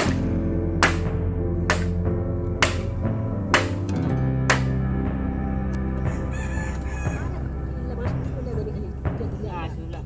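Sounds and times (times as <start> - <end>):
background music with low drone: 0.0 - 10.0
rooster crowing: 6.0 - 7.5.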